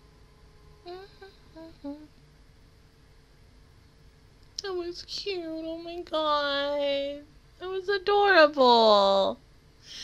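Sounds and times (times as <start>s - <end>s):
woman humming: 0.8s - 2.2s.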